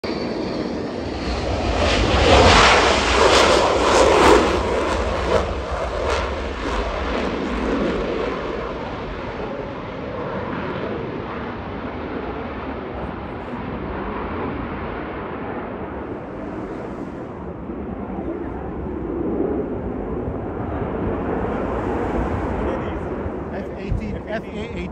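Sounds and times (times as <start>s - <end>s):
jet engine roaring: 0.0s - 24.9s.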